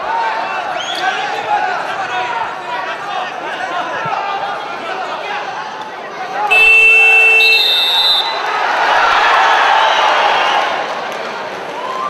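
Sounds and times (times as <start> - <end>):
arena crowd noise: 0.0 - 12.0
loud electronic buzzer: 6.5 - 8.3.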